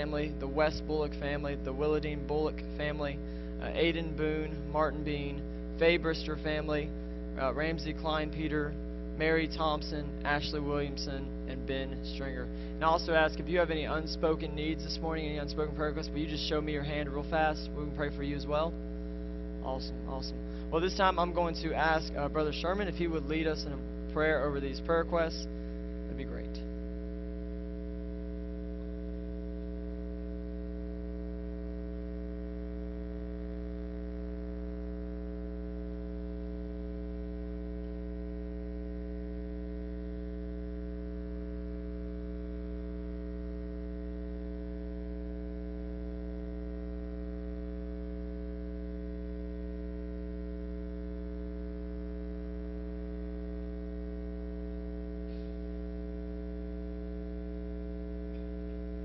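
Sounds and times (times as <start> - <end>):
electrical mains hum: 0.0 - 59.0.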